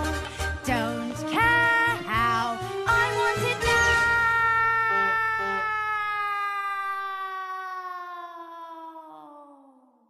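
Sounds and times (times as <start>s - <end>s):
girl screaming: 3.6s - 10.0s.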